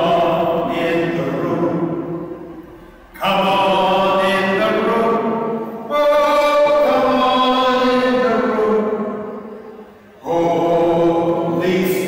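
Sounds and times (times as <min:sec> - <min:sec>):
man singing unaccompanied: 0:00.0 - 0:02.0, 0:03.1 - 0:09.3, 0:10.2 - 0:12.0.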